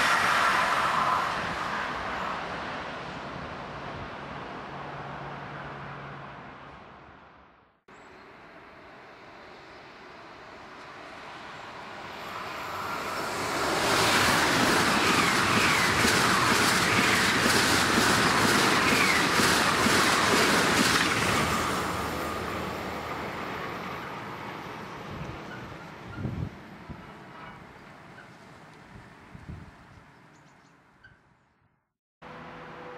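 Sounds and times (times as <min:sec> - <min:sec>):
high-speed train passing: 0:00.0 - 0:29.8, 0:32.2 - 0:32.9
wheels clattering over rails: 0:13.4 - 0:22.2.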